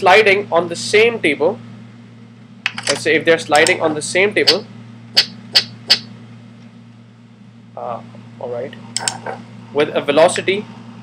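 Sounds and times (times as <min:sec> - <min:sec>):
steady low hum: 0:00.0 - 0:11.0
sharp mouse clicks: 0:05.2 - 0:06.1.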